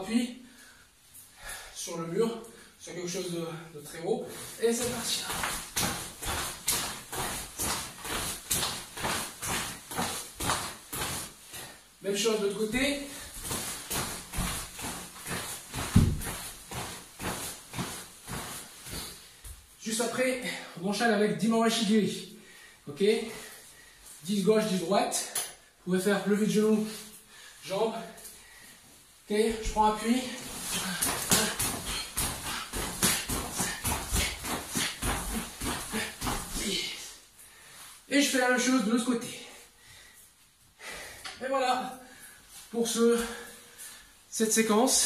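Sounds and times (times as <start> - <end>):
fabric swishing: 4.2 - 19.8, 29.0 - 37.2
foot tapping on floor: 4.8 - 11.7, 12.7 - 19.7, 29.5 - 36.8
feet touching down on floor: 12.8 - 19.7.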